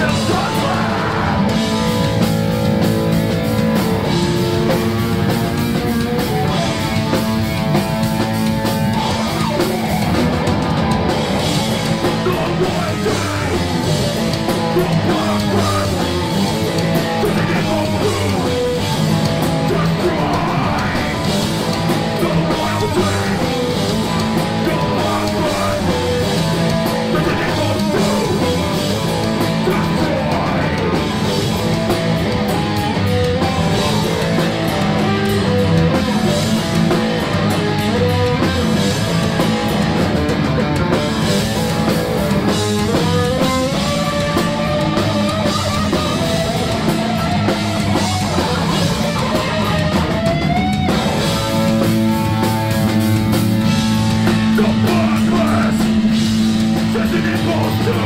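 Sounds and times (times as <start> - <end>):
person singing into microphone: 0.0 - 1.6, 12.0 - 14.0, 14.6 - 16.5, 17.1 - 19.0, 19.6 - 21.3, 22.0 - 31.3, 54.5 - 56.2
bass guitar: 0.0 - 58.0
drum kit: 0.0 - 58.0
electric guitar: 0.0 - 58.0.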